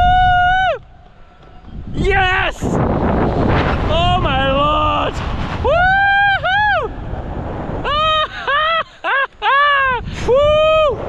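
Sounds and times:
wind buffeting microphone: 0:00.0 - 0:11.0
man screaming and yelling: 0:03.9 - 0:06.9, 0:07.8 - 0:11.0.

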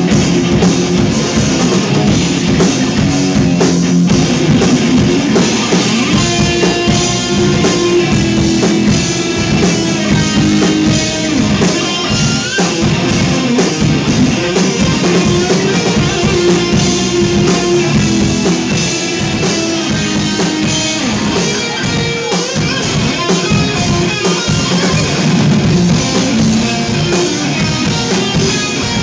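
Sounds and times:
bass guitar: 0:00.0 - 0:29.0
drum kit: 0:00.0 - 0:29.0
electric guitars: 0:00.0 - 0:29.0.

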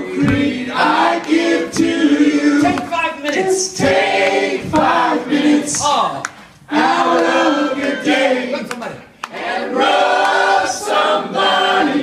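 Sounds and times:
group singing held notes: 0:00.0 - 0:08.5, 0:09.2 - 0:12.0.

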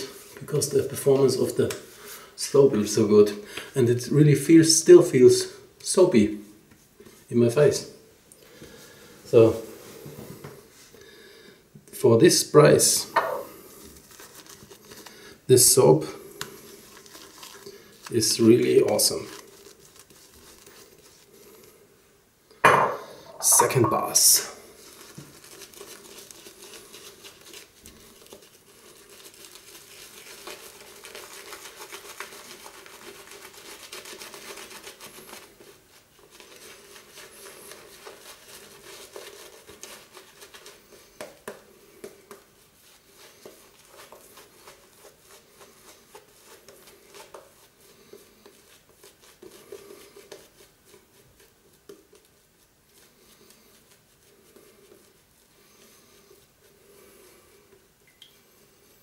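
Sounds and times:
shaving brush squishing lather: 0:12.6 - 0:21.7, 0:23.4 - 0:58.2.

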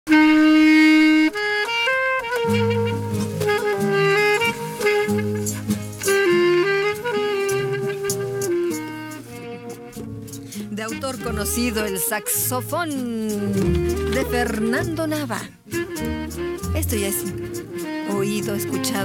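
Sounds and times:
guitar accompaniment: 0:00.1 - 0:19.0
saxophone slow melody: 0:00.1 - 0:19.0.

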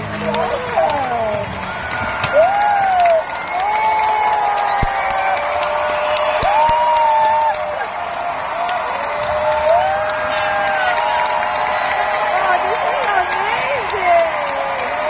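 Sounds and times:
audience applauding: 0:00.0 - 0:15.0
crowd whooping and cheering: 0:00.1 - 0:15.0.

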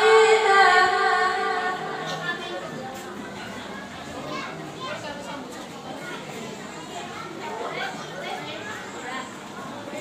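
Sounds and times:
children chattering in a hall: 0:00.0 - 0:10.0.

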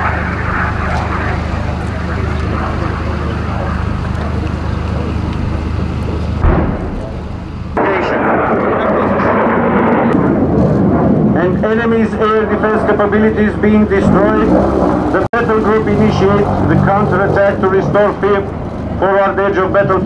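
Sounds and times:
jet fighter flying overhead: 0:00.0 - 0:20.0
steady low drone: 0:00.0 - 0:20.0
missile explosion blast: 0:06.4 - 0:11.7.

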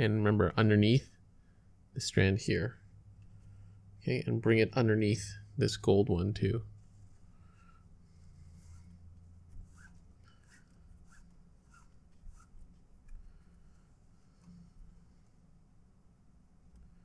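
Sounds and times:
low steady hum: 0:00.0 - 0:17.0
soft scratchy sounds: 0:02.1 - 0:15.7
cord rustling and rubbing: 0:08.1 - 0:15.4.

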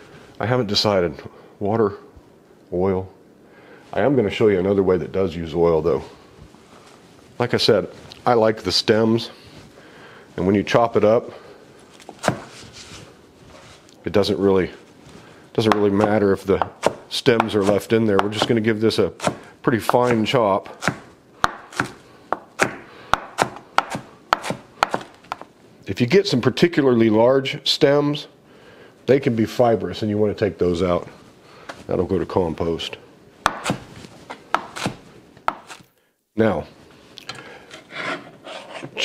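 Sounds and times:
knife chopping on cutting board: 0:12.2 - 0:12.5, 0:15.7 - 0:18.6, 0:19.2 - 0:20.2, 0:20.8 - 0:25.4, 0:33.4 - 0:33.9, 0:34.5 - 0:35.8
knife scraping cutting board: 0:37.7 - 0:39.0.

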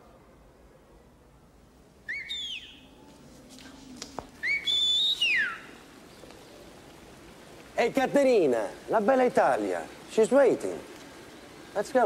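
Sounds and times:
person whistling loud and shrill: 0:02.1 - 0:02.8, 0:04.4 - 0:05.7.

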